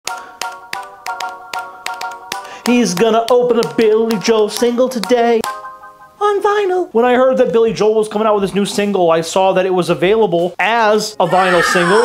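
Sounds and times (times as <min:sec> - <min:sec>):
clicking rhythm: 0:00.0 - 0:06.5.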